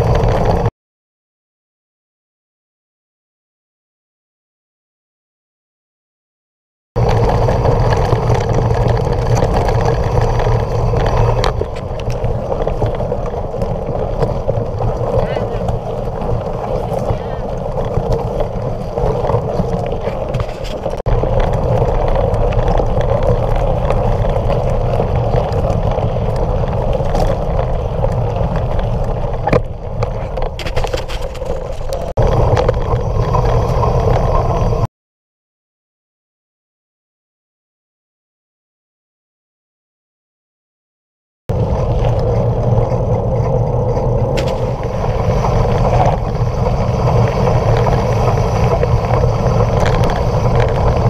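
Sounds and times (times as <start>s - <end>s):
tyres on gravel trail: 0.0s - 0.7s, 7.0s - 34.9s, 41.5s - 51.0s
wind rumble: 0.0s - 0.7s, 7.0s - 34.9s, 41.5s - 51.0s.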